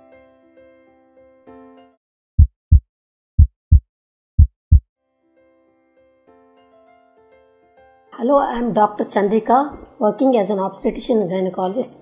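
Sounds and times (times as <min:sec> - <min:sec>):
heartbeat thumps: 0:02.4 - 0:02.8, 0:03.4 - 0:03.8, 0:04.4 - 0:04.8.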